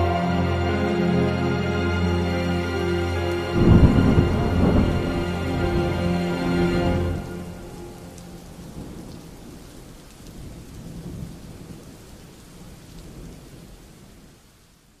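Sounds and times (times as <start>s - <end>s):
steady rain: 0.0s - 15.0s
low rumbling thunder: 3.5s - 11.8s.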